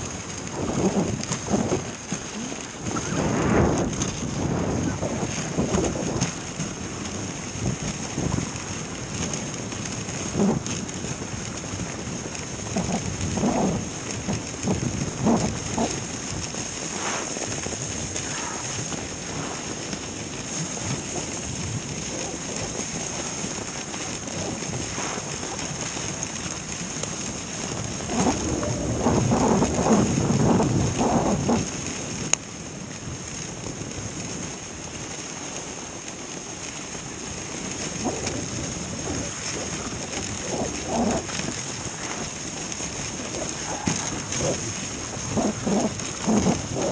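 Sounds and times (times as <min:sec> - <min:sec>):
sled bumps and rattles: 0:00.0 - 0:46.9
sled runners hissing over snow: 0:00.0 - 0:46.9.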